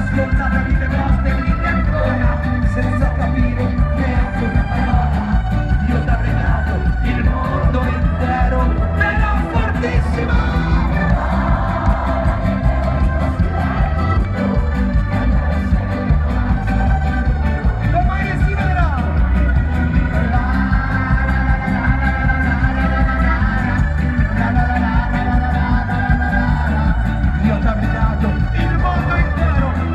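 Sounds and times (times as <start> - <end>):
person singing: 0.0 - 17.9, 19.2 - 29.9
audience voices: 0.0 - 29.9
live rock band playing: 0.0 - 29.9.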